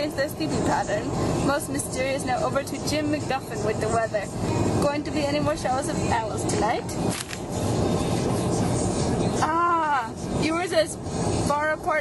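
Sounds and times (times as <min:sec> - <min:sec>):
road rumble inside car: 0:00.0 - 0:12.0.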